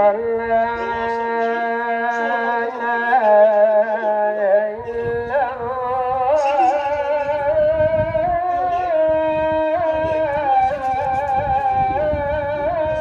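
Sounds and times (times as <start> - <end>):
person chanting: 0.0 - 13.0.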